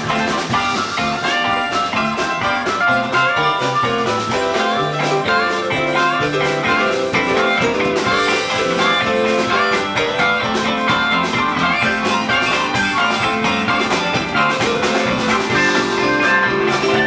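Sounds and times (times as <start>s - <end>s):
bass: 0.0s - 17.0s
drums: 0.0s - 17.0s
electric guitar: 0.0s - 17.0s
keyboard: 0.0s - 17.0s.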